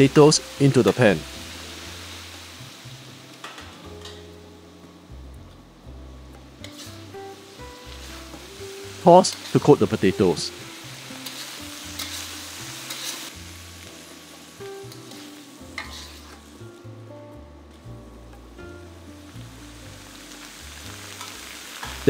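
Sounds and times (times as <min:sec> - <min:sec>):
food sizzling in a wok: 0:00.0 - 0:22.0
metal spatula scraping pan: 0:06.6 - 0:07.0, 0:11.1 - 0:13.3, 0:14.9 - 0:16.4.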